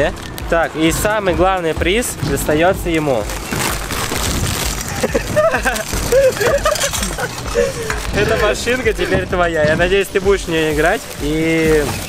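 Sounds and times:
plastic wrapping crinkling: 0:00.0 - 0:12.0
boys laughing: 0:04.7 - 0:09.5.

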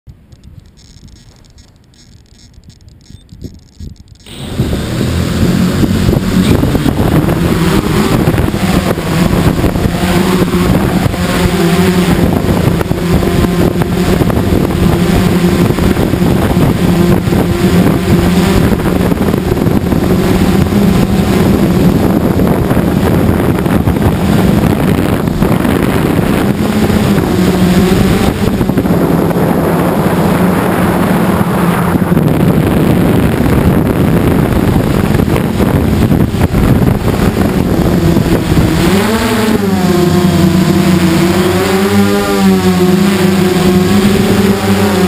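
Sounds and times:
drone propellers whirring: 0:00.1 - 0:45.0.

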